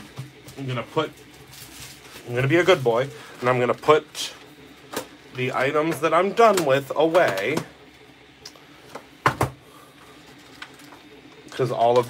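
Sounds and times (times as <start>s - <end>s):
art supplies knocking and clicking: 5.9s - 7.7s, 8.9s - 9.6s.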